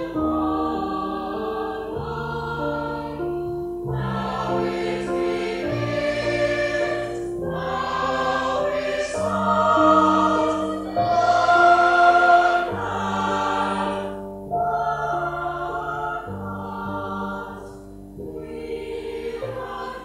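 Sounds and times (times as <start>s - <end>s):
electric keyboard accompaniment: 0.0s - 20.0s
mixed choir singing: 0.0s - 20.0s.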